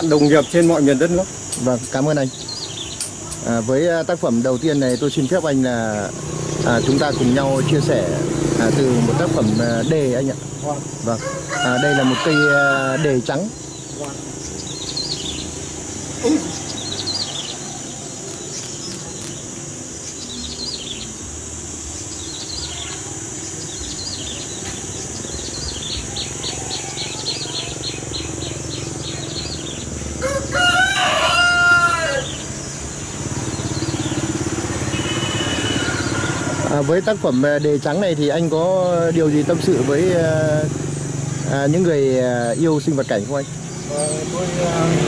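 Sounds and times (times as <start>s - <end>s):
small birds chirping: 0.0s - 45.0s
rooster crowing: 11.0s - 13.5s, 29.0s - 37.5s.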